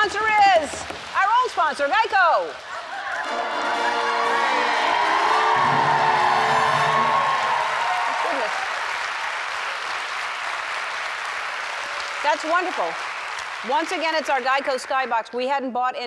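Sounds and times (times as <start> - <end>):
studio audience applauding: 0.0 - 15.5
music: 3.2 - 7.5.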